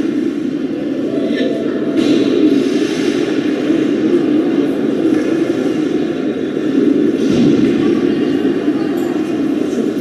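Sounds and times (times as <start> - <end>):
indoor arena background rumble: 0.0 - 10.0.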